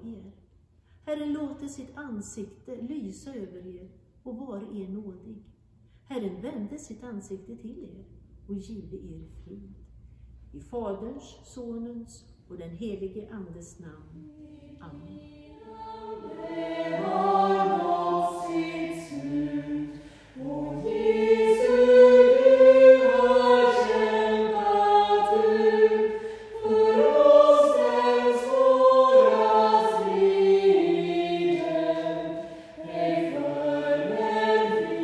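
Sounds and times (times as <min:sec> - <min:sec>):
choir singing a hymn: 0:14.2 - 0:35.0.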